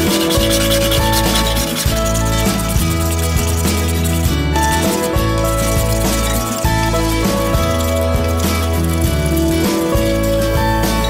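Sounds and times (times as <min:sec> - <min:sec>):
background music with steady beat: 0:00.0 - 0:11.0
hand tool scraping wood: 0:00.0 - 0:11.0.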